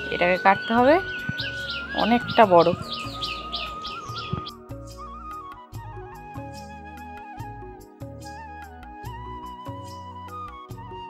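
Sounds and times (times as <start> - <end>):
small bird chirping: 0.0 - 4.6
background music with flute: 0.0 - 11.0.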